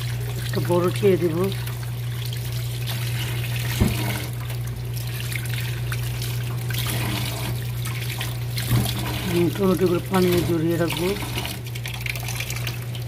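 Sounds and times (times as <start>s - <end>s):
tap water running in sink: 0.0s - 13.0s.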